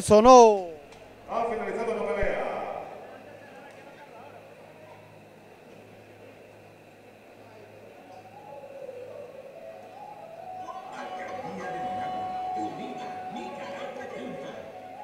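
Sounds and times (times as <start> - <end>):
low electrical hum: 0.0 - 15.0
indistinct distant voices: 0.6 - 15.0.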